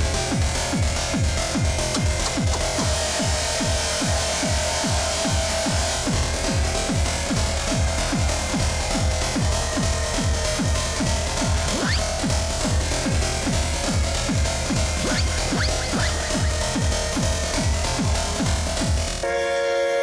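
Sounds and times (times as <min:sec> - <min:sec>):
looped beatbox beat: 0:00.0 - 0:19.2.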